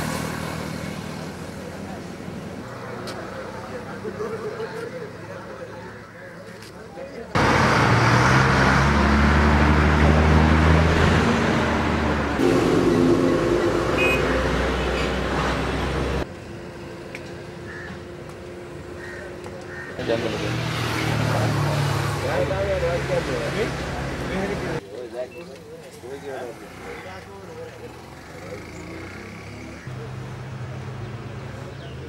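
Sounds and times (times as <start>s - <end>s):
engine running: 7.4s - 16.4s
people talking: 22.2s - 32.0s.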